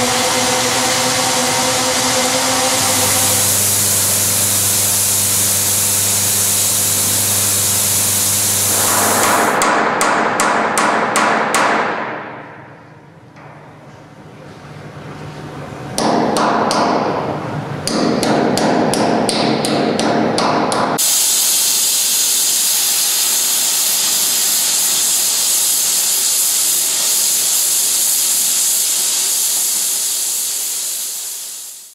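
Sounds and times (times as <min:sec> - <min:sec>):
steady loud hiss: 0:00.0 - 0:13.1, 0:20.9 - 0:31.9.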